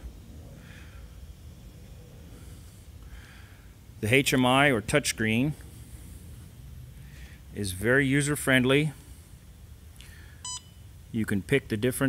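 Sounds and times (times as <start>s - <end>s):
low steady hum: 0.0s - 12.0s
short electronic beep: 10.4s - 10.9s.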